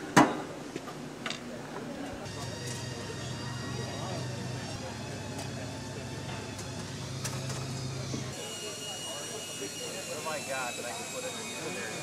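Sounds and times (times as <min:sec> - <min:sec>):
faint voices: 0:01.4 - 0:12.0.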